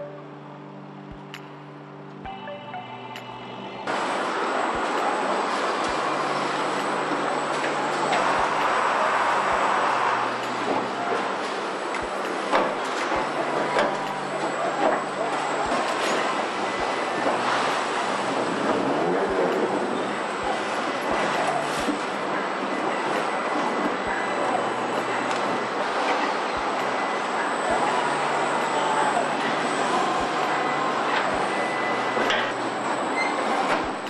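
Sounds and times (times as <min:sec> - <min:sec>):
factory machinery noise: 0:00.0 - 0:34.0
gliding machine squeals: 0:02.4 - 0:34.0.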